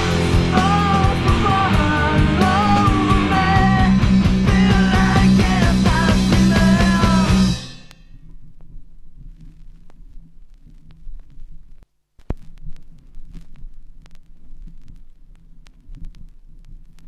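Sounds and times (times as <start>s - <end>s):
vinyl record hum and rumble: 0.0s - 17.0s
vinyl surface clicks and pops: 12.2s - 17.0s.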